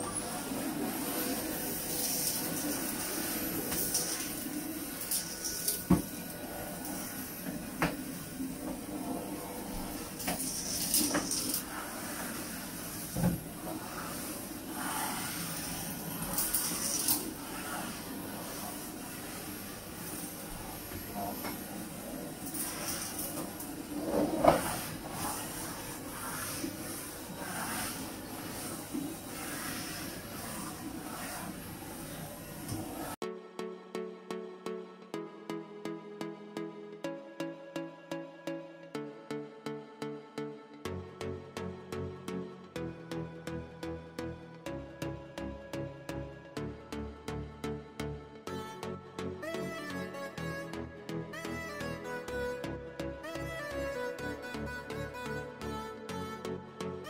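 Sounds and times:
vacuum cleaner motor whine: 0:00.0 - 0:33.2.

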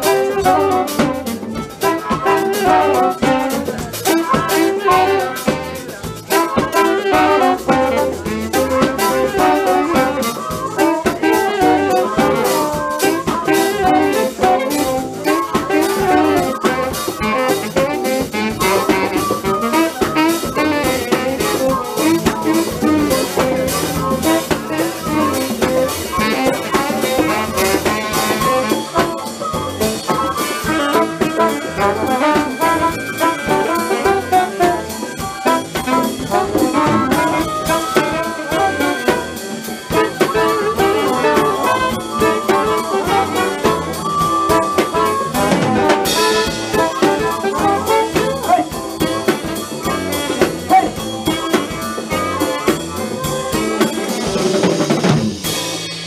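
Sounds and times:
drum kit: 0:00.0 - 0:56.0
electric guitar: 0:00.0 - 0:56.0
saxophone: 0:00.0 - 0:56.0.

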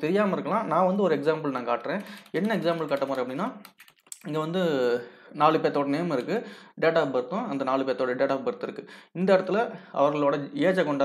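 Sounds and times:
man talking: 0:00.0 - 0:03.6, 0:04.2 - 0:11.0.

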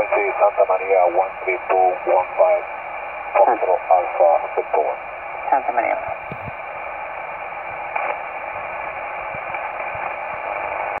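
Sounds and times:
radio static hiss: 0:00.0 - 0:11.0.

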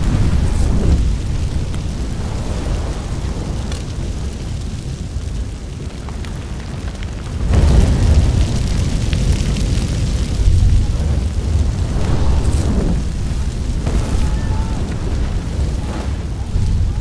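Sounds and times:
fire crackling: 0:00.0 - 0:17.0
large fire rumbling: 0:00.0 - 0:17.0.

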